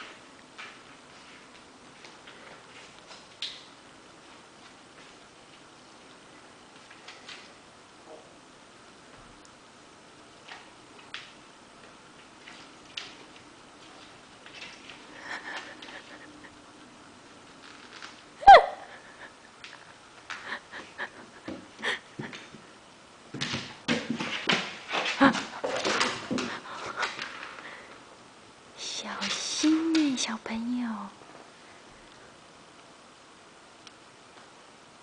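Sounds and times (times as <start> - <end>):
dog whining: 18.4 - 19.0.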